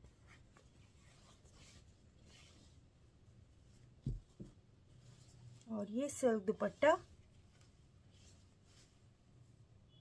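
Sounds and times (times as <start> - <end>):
cloth rustling: 0.0 - 9.6.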